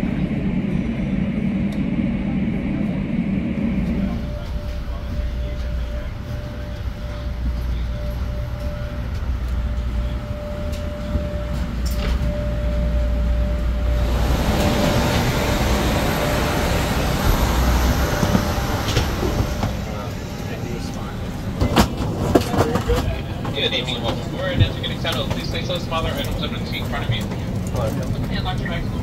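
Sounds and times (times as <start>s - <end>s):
low rumble and hum: 0.0s - 29.0s.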